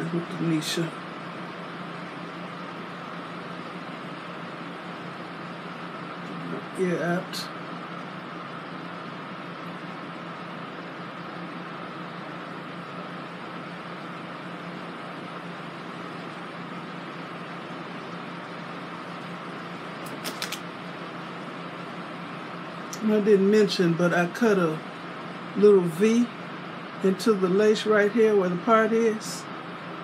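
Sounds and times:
room hum and hiss: 0.0s - 30.0s.

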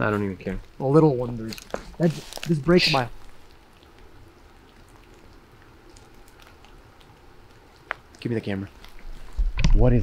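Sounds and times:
light rain falling: 0.0s - 10.0s.

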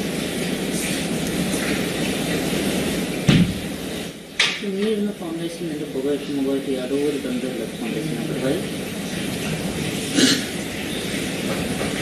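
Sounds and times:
thump: 3.3s - 3.6s.

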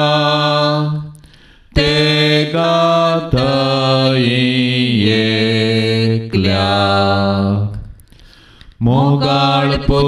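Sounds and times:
devotional hymn singing: 0.0s - 10.0s.

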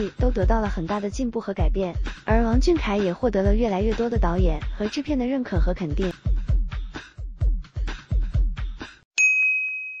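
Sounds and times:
electronic music with kick drum: 0.0s - 9.0s
bright ding: 9.2s - 10.0s.

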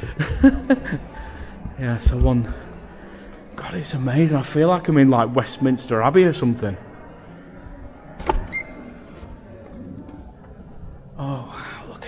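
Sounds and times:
door squeaking: 8.0s - 11.2s.

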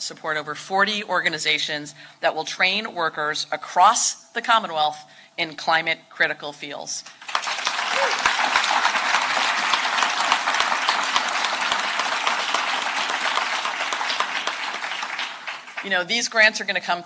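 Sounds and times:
audience applauding: 7.2s - 15.9s.

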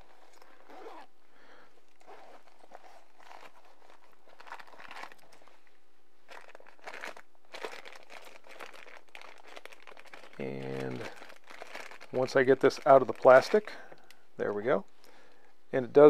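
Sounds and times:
zipper of a case unzipping: 0.0s - 1.1s, 2.0s - 5.3s
plastic bags crinkling: 1.9s - 14.2s.

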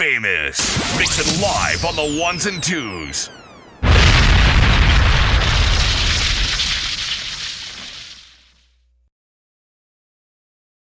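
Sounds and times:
explosion blast with deep rumble: 3.8s - 8.5s.

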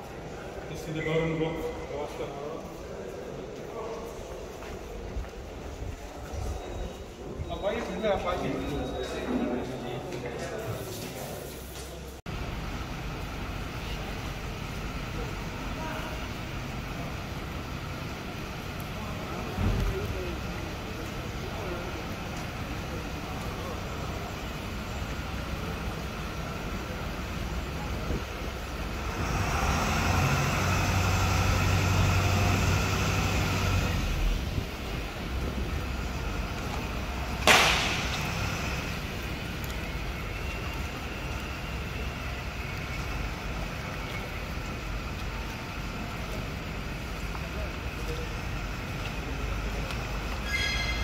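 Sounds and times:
low rumble and hiss: 12.0s - 51.0s
vehicle engine running: 12.3s - 50.4s.

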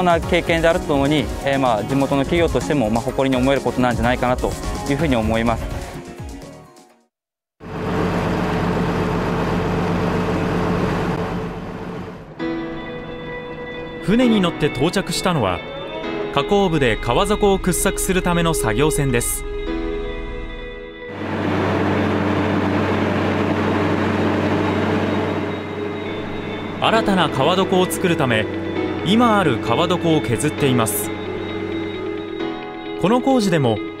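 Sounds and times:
boat engine humming: 7.6s - 33.2s.

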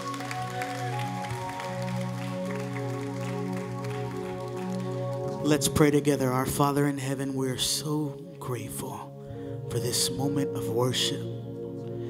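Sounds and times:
band playing sustained chords: 0.0s - 12.0s.

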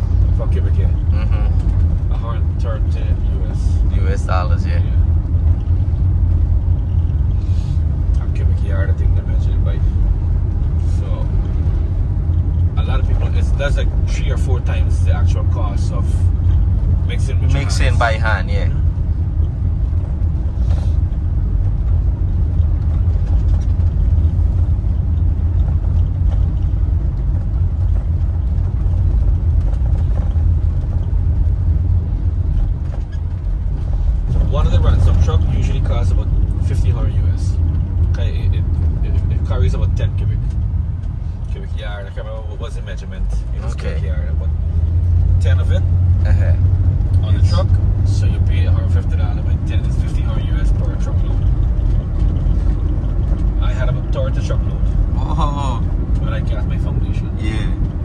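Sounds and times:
car engine and road rumble: 0.0s - 58.0s.

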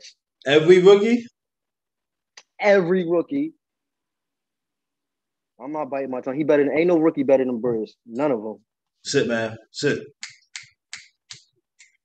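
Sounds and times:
sharp snapping clicks: 10.2s - 12.0s.

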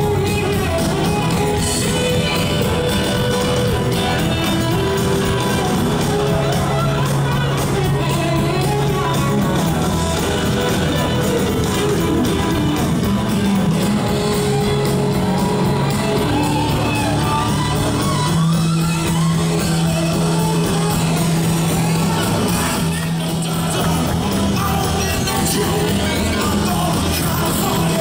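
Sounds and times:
electric guitar lead lines: 0.0s - 28.0s
live blues-rock band: 0.0s - 28.0s.

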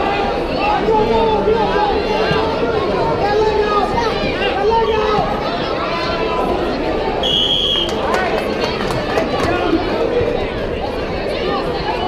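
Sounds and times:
crowd chatter and shouting: 0.0s - 12.0s
referee's whistle blast: 7.2s - 8.0s.

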